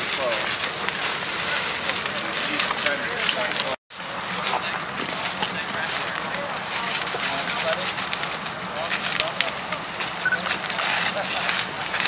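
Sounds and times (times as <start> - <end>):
fire rushing and crackling: 0.0 - 12.0
sharp pops of fire: 0.0 - 12.0.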